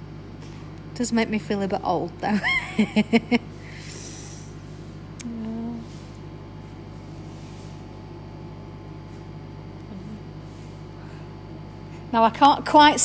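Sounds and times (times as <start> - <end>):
low electrical hum: 0.0 - 13.0
woman humming: 5.2 - 6.1, 9.8 - 10.8.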